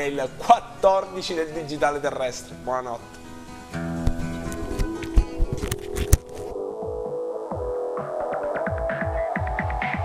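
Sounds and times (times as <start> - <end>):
electronic music: 3.9 - 10.0.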